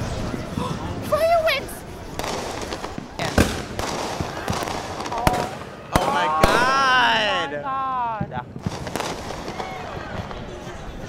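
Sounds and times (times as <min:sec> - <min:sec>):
fireworks banging: 0:00.0 - 0:07.5, 0:08.2 - 0:11.0.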